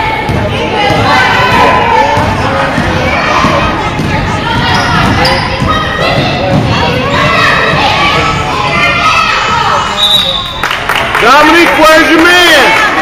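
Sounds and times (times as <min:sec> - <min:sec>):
crowd voices and shouts: 0:00.0 - 0:13.0.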